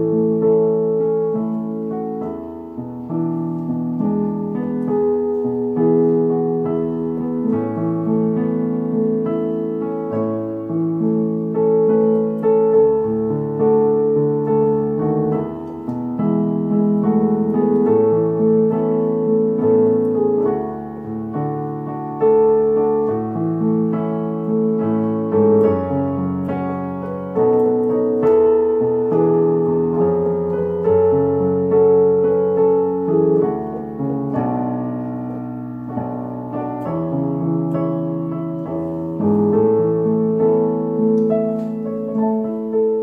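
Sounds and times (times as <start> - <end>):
digital piano playing chords: 0.0 - 43.0.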